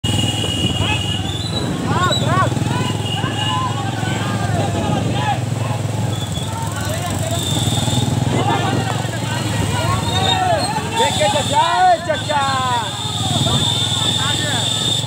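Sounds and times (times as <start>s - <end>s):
voices shouting: 0.4s - 15.0s.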